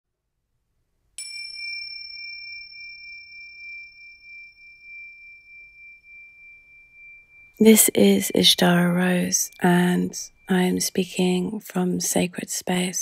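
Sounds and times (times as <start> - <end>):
small bell ringing: 1.2 - 11.2.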